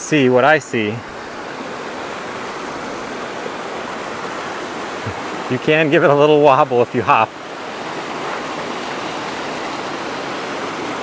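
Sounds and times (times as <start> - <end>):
creek rushing over rocks: 0.0 - 11.0.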